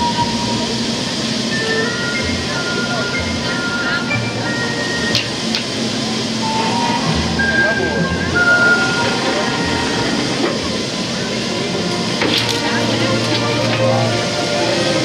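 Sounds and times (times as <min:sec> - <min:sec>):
crowd chatter: 0:00.0 - 0:15.0
ferry rumble: 0:00.0 - 0:15.0
short high steady tones: 0:05.9 - 0:10.6.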